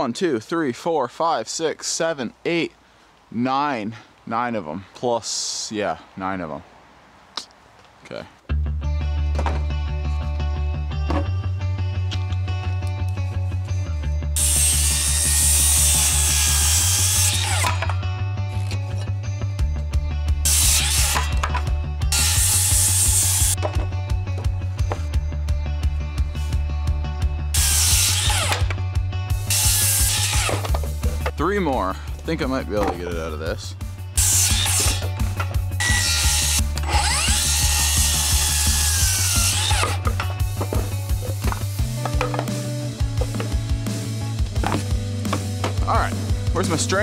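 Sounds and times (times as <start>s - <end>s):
background music with bass line: 8.5s - 47.0s
circular saw cutting boards: 14.4s - 18.0s, 20.5s - 23.6s, 27.6s - 28.7s, 29.5s - 31.3s, 34.2s - 35.2s, 35.8s - 43.6s.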